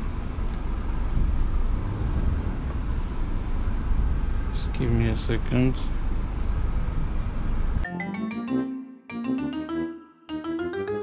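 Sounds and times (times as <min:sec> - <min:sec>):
diesel truck engine rumble: 0:00.0 - 0:07.8.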